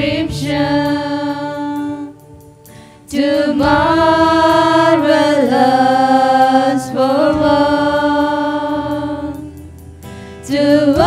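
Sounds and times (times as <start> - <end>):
women singing together: 0.0 - 2.2, 3.1 - 9.5, 10.5 - 11.0
acoustic guitar: 0.0 - 11.0
bass: 0.0 - 11.0.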